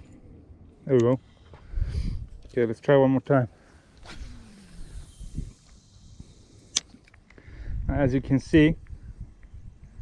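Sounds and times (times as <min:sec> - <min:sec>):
fishing line hissing off reel: 0:03.6 - 0:07.3.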